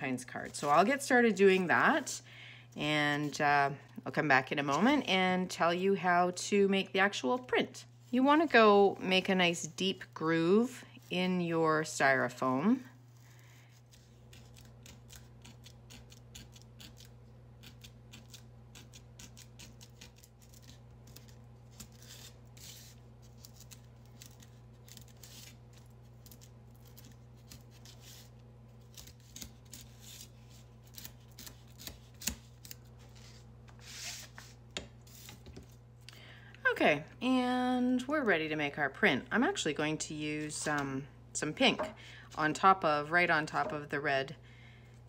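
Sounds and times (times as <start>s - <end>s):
low steady hum: 0.0s - 45.0s.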